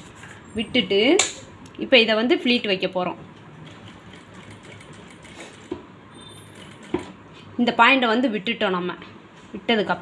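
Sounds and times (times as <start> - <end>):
sewing machine running: 3.6 - 5.7, 6.3 - 7.1.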